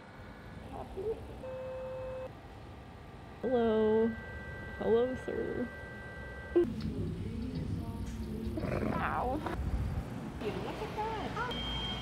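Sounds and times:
low background rumble: 0.0s - 11.5s
steady tone: 3.2s - 8.0s.

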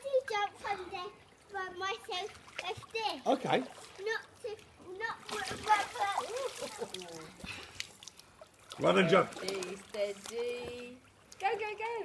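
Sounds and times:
pool water splashing: 0.0s - 12.0s.

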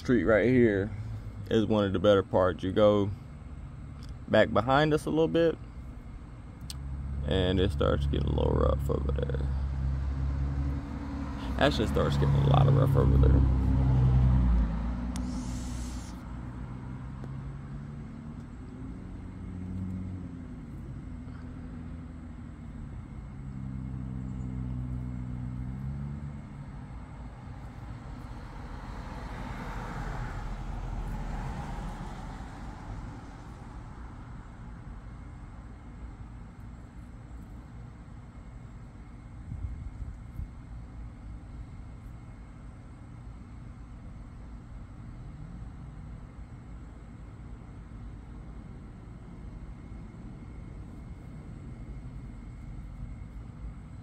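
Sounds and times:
vehicle engine low hum: 0.0s - 54.0s
car driving by: 6.8s - 35.0s.

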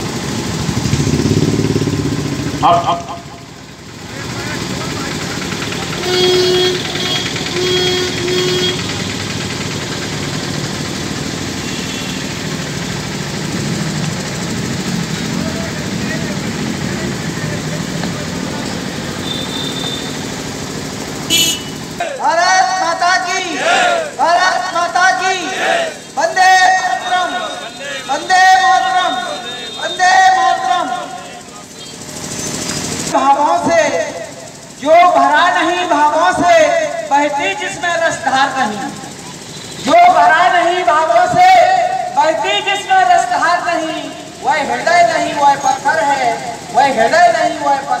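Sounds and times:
traffic hum: 0.0s - 48.0s
man speaking over loudspeaker: 2.6s - 3.5s, 22.0s - 31.7s, 33.1s - 39.0s, 39.8s - 48.0s
rapid rattling noise: 3.9s - 11.7s.

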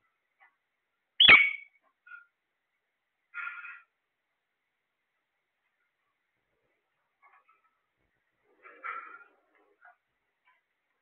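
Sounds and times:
faint bird chirp: 1.2s - 2.4s, 3.3s - 4.0s.

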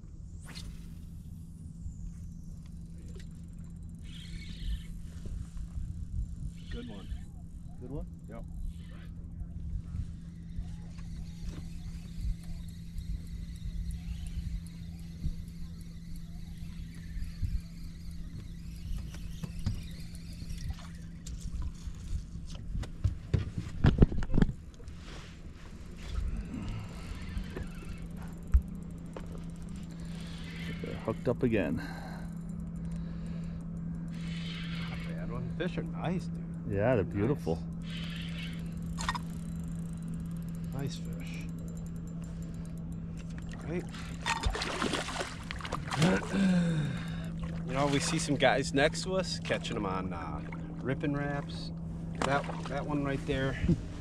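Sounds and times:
boat motor humming: 0.0s - 54.0s
rod and reel clicks and knocks: 10.3s - 25.0s, 27.0s - 45.9s
boat rumble on water: 38.5s - 54.0s.

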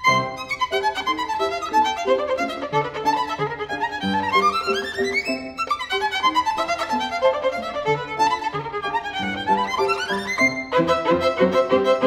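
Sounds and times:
piano accompaniment: 0.0s - 12.0s
violin playing fast short notes: 0.0s - 12.0s.

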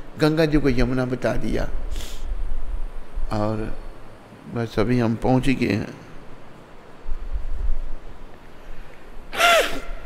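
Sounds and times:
man sobbing: 9.3s - 10.0s.

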